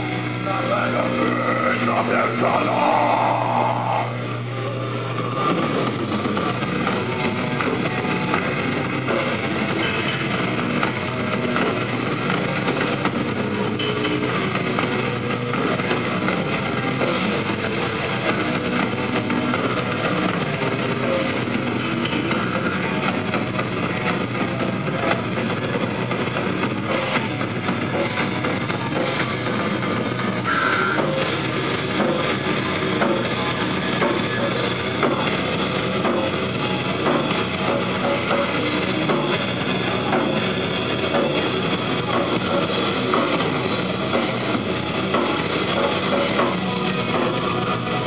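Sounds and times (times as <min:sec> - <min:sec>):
metal band playing live: 0:00.0 - 0:48.0
pounding drum kit: 0:00.0 - 0:48.0.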